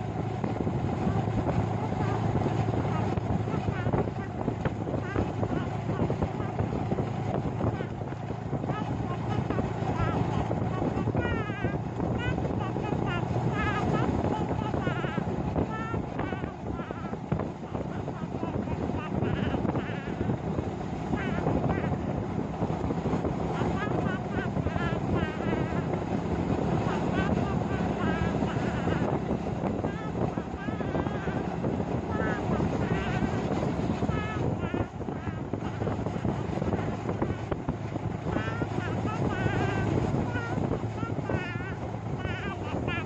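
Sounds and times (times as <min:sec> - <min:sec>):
vehicle rumble: 0:00.0 - 0:43.0
wind buffeting microphone: 0:00.0 - 0:43.0.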